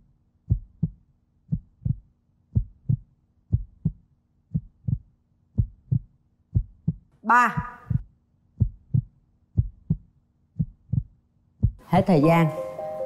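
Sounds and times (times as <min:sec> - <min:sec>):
heartbeat thumps: 0:00.4 - 0:12.0.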